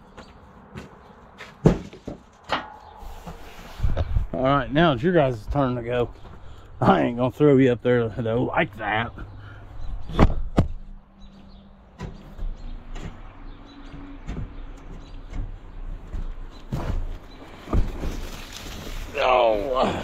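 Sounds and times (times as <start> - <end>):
knocks and clunks on steel: 10.0 - 10.9, 11.8 - 18.0.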